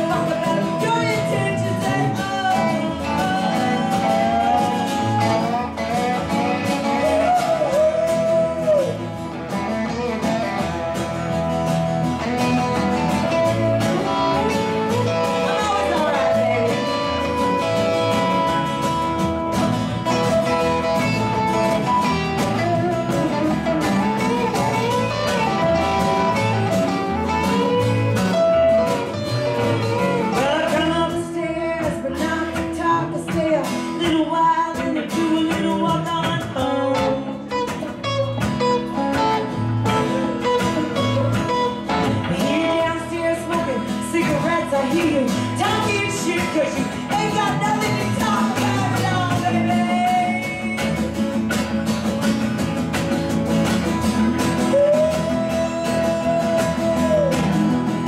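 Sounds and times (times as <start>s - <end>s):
live rock-country band playing: 0.0s - 58.0s
pitch-bending lead guitar line: 0.0s - 58.0s.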